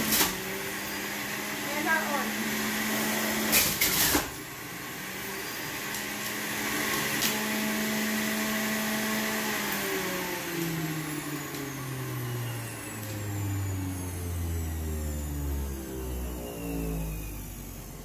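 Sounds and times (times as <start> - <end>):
juicer motor humming: 0.0 - 18.0.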